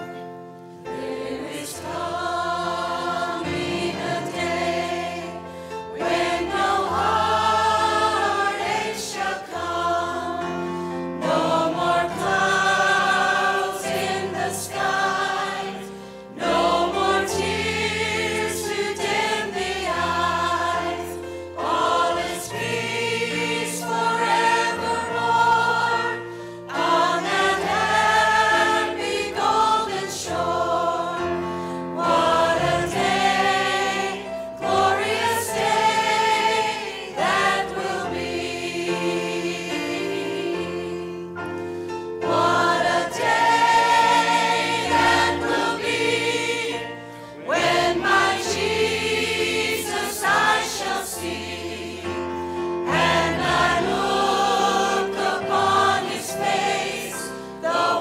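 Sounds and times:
church choir singing: 0.0 - 58.0.

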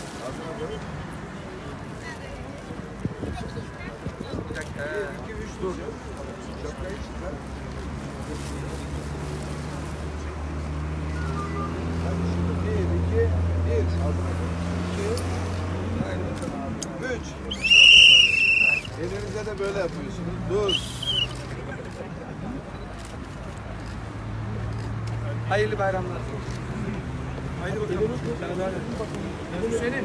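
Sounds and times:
crowd murmur: 0.0 - 30.0.

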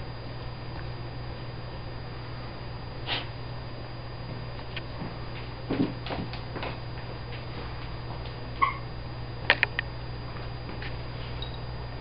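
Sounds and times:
steady low hum: 0.0 - 12.0
dog whimpering: 8.6 - 8.9.

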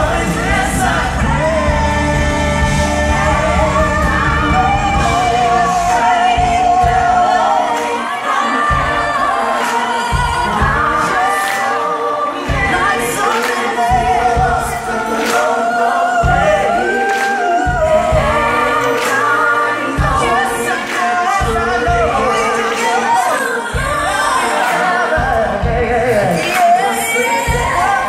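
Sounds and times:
voices singing pop ballad: 0.0 - 28.0.

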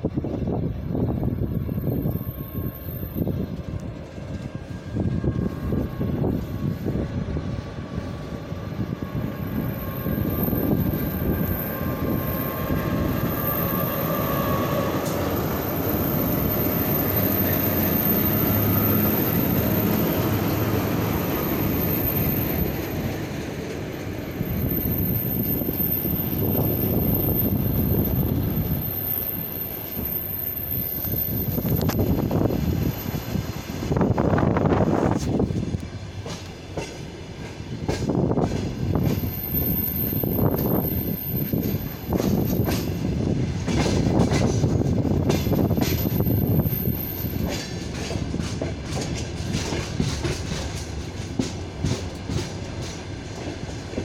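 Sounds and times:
train rumbling past: 0.0 - 54.0.

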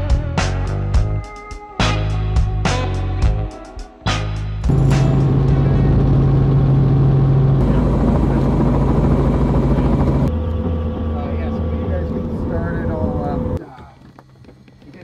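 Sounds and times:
helicopter engine and rotor noise: 4.7 - 15.0.

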